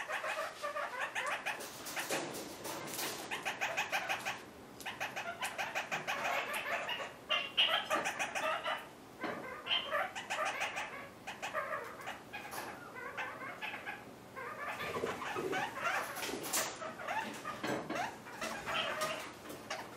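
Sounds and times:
parakeets chattering: 0:00.0 - 0:19.9.

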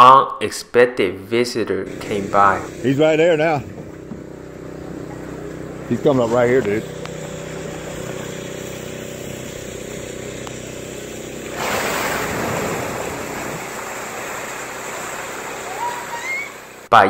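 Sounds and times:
low motor hum: 0:01.8 - 0:16.9
whale splashing water: 0:11.4 - 0:16.9.

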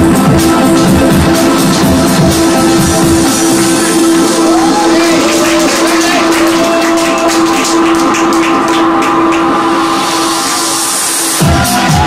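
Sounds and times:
deep house music: 0:00.0 - 0:12.0.

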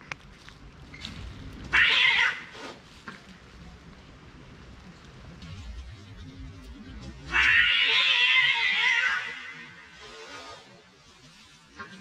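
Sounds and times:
cat meowing: 0:01.7 - 0:02.6, 0:07.3 - 0:09.7.

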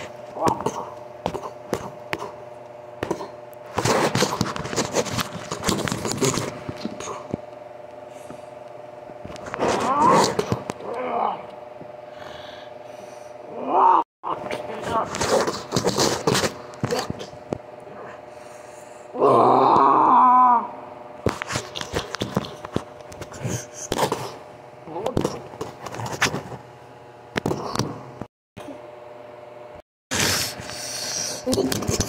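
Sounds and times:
faint steady hum: 0:00.0 - 0:32.0
person voicing monster cry: 0:09.8 - 0:11.5, 0:13.5 - 0:15.1, 0:19.1 - 0:20.8.

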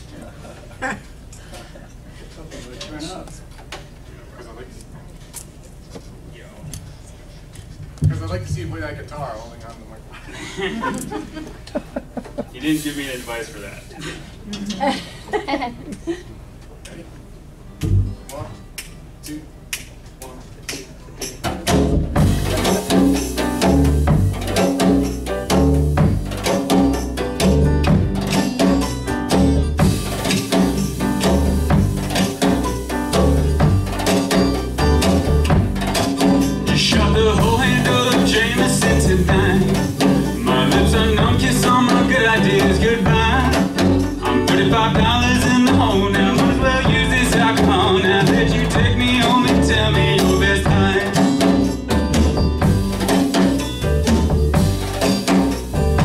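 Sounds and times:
live band playing: 0:17.7 - 0:18.7, 0:20.8 - 0:56.0
steady drum beat: 0:17.8 - 0:18.4, 0:20.7 - 0:56.0.

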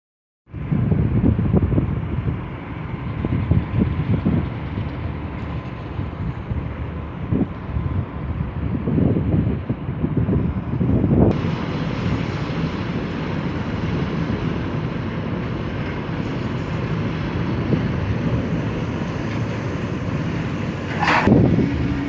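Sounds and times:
wind buffeting microphone: 0:00.5 - 0:22.0
heavy machinery rumbling: 0:00.6 - 0:22.0.

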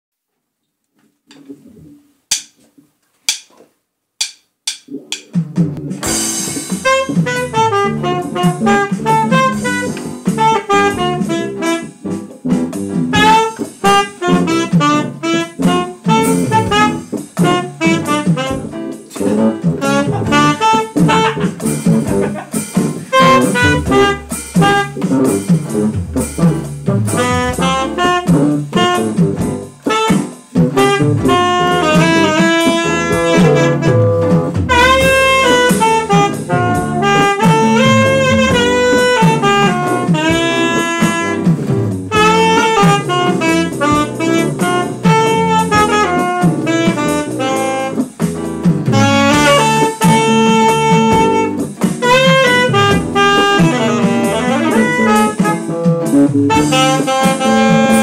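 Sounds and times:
jazz combo playing: 0:04.2 - 0:58.0
saxophone melody: 0:05.8 - 0:58.0.

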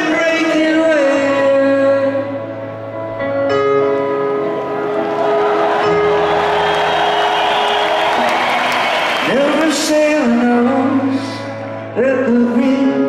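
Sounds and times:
crowd applause and cheering: 0:04.4 - 0:10.7.

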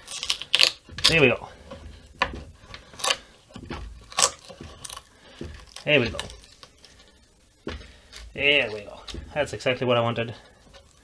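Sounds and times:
wood cracking and splitting: 0:00.0 - 0:11.0.

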